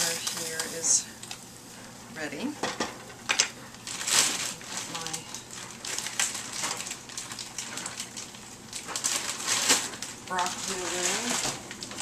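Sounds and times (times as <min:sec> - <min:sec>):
crinkling and rustling: 0:02.7 - 0:12.0.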